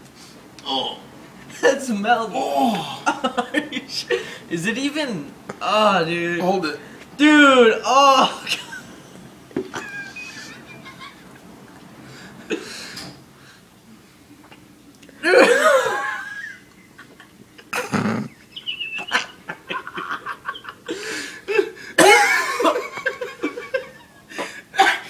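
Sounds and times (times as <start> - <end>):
young men laughing: 2.4 - 4.5, 8.2 - 11.4, 15.2 - 25.0.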